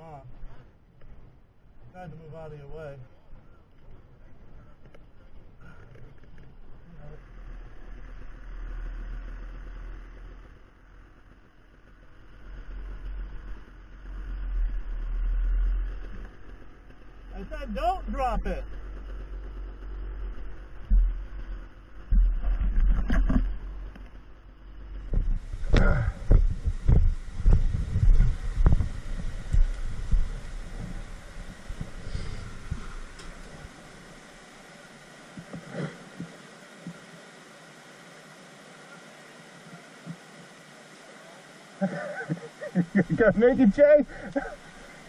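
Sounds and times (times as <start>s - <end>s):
rocky creek flowing: 8.8s - 45.0s.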